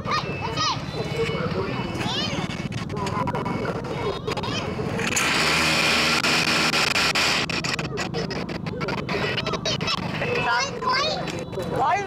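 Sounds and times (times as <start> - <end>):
chatter: 0.0 - 12.0
small motorbike engine buzzing: 3.5 - 10.6.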